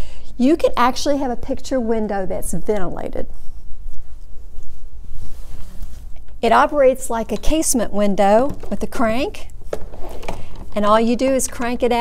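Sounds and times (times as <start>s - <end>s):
clip-on microphone rubbing on clothing: 3.7s - 6.6s.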